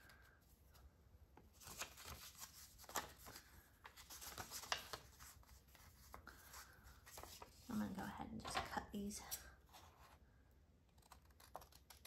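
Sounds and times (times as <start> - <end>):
paper scraps crinkling: 1.6 - 7.6.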